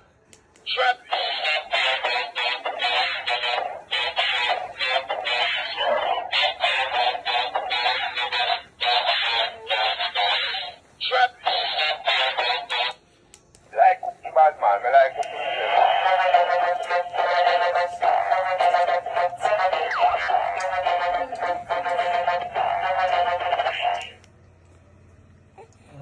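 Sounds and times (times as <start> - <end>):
toy singing through tinny speaker: 0.6 - 13.0, 13.8 - 24.2.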